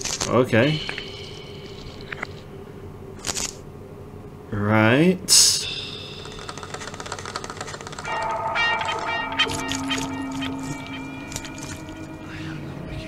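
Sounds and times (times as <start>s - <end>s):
held synth tones: 8.1s - 13.0s.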